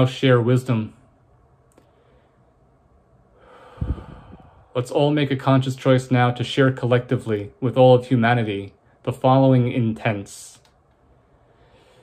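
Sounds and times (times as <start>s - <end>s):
man breathing in: 1.8s - 2.6s, 3.3s - 4.8s, 11.2s - 12.0s
puff of breath on microphone: 3.4s - 4.7s.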